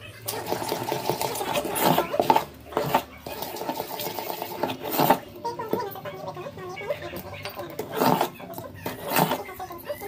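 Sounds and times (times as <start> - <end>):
spoon scraping steel vessel: 0.5 - 5.9, 7.4 - 10.0.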